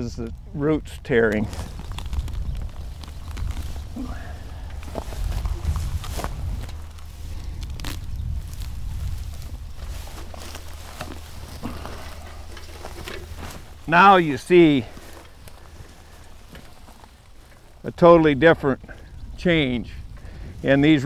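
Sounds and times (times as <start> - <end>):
roots tearing with snaps and crunches: 0.0 - 17.9
low steady rumble: 0.0 - 21.0.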